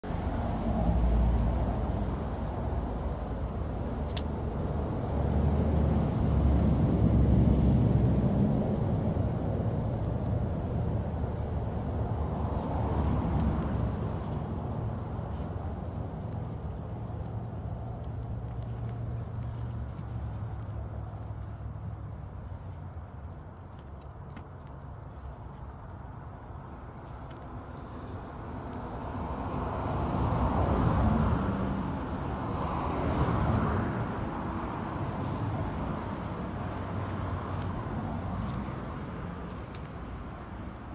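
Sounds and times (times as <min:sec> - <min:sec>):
distant road traffic: 0:00.0 - 0:40.9.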